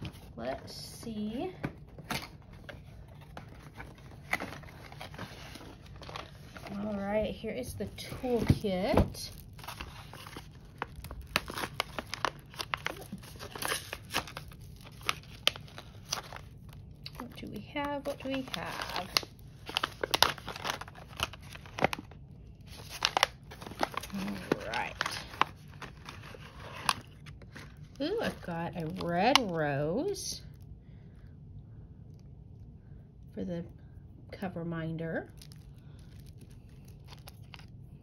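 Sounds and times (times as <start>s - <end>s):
plastic packaging crinkling: 0.0s - 30.2s, 35.2s - 38.0s.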